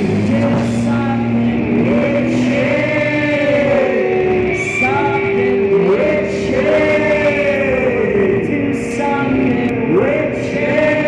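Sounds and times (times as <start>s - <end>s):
band playing droning music: 0.0s - 11.0s.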